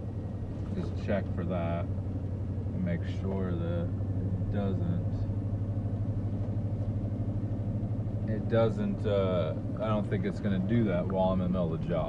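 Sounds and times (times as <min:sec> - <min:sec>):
truck engine hum inside cab: 0:00.0 - 0:12.0.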